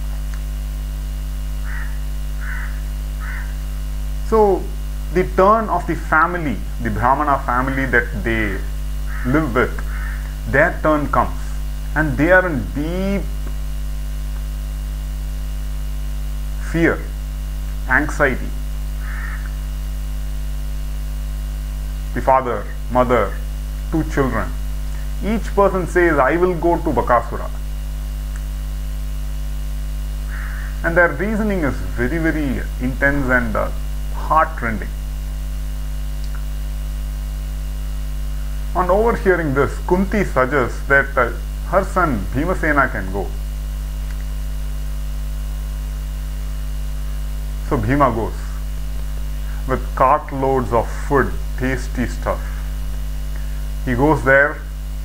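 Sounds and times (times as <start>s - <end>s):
low mains hum: 0.0s - 55.0s
short harsh calls: 1.6s - 3.6s, 9.1s - 10.4s, 19.0s - 19.6s, 30.3s - 30.9s.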